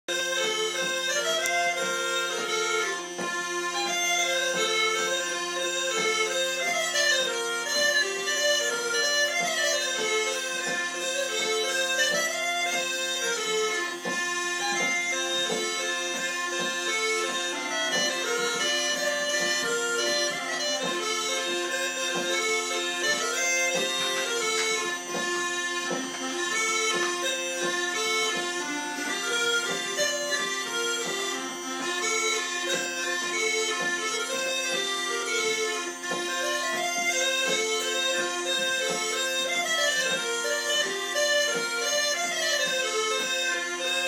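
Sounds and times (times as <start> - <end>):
smallpipes playing lively tune: 0.1 - 44.0.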